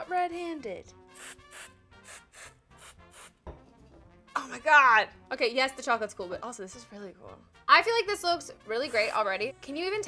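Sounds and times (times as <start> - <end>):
compressed air spray hissing: 1.1 - 3.4.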